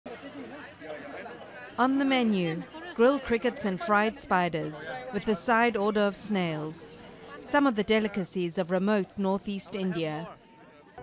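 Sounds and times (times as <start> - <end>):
background chatter: 0.1 - 11.0.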